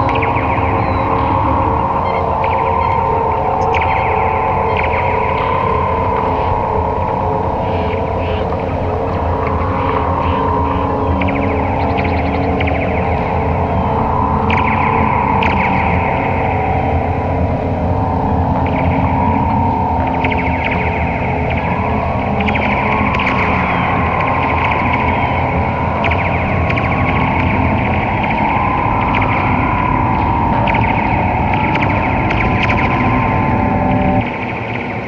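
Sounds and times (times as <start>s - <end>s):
steady low hum: 0.0s - 35.0s
wavering mid-pitched drone: 0.0s - 35.0s.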